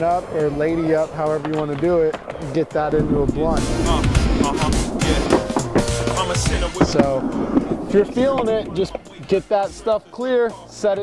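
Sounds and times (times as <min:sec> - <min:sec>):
skateboard knocking on coping: 0:00.0 - 0:09.3
skateboard wheels rolling on ramp: 0:00.0 - 0:09.6
background music: 0:00.0 - 0:11.0.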